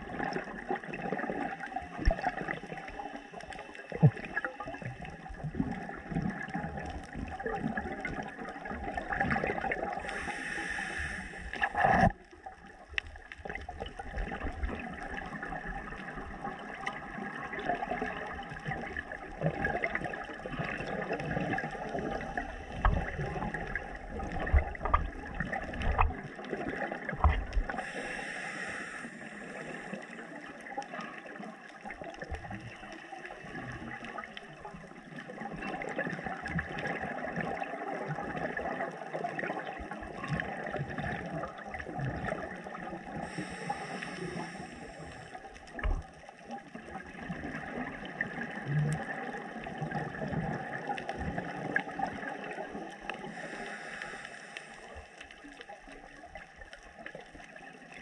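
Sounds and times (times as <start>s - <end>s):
bubbles gurgling: 0.0s - 28.2s, 29.0s - 53.9s
reef crackle: 0.1s - 58.0s
diver breathing through regulator: 10.0s - 11.8s, 27.7s - 30.3s, 43.2s - 45.4s, 53.2s - 55.2s.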